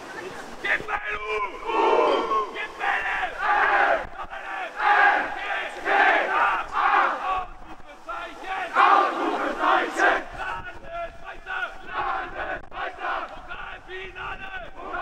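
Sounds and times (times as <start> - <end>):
teenagers shouting a chant: 0.6 - 15.0.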